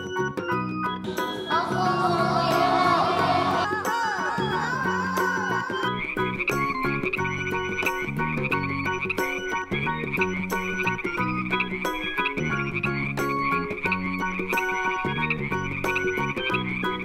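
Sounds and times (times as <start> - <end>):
background music with bass line: 0.0 - 17.0
frog chorus trilling: 1.3 - 17.0.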